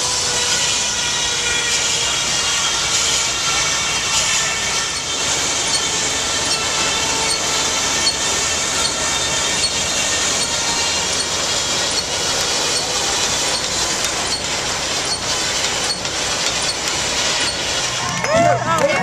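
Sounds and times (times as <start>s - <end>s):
steam hissing: 0.0s - 18.1s
machinery running: 0.0s - 19.0s.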